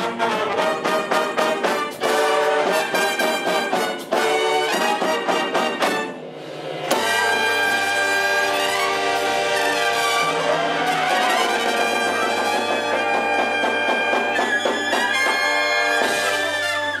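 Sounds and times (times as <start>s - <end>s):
jazz big band playing: 0.0s - 17.0s.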